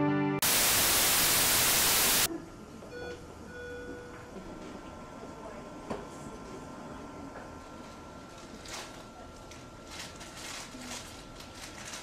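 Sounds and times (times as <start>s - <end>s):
music: 0.0s - 0.4s
background hiss: 0.4s - 2.3s
loud white noise burst: 0.4s - 2.3s.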